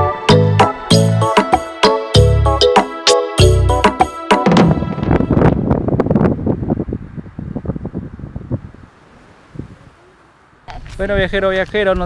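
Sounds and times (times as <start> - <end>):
wind buffeting microphone: 4.5 - 12.0.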